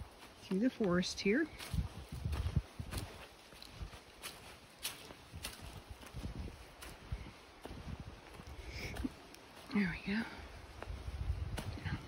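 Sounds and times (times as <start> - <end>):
footsteps on dirt and leaves: 0.0 - 12.0.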